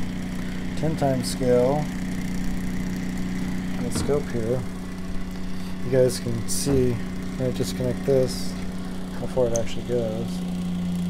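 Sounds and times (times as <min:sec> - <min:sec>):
pulse motor electrical hum: 0:00.0 - 0:11.0.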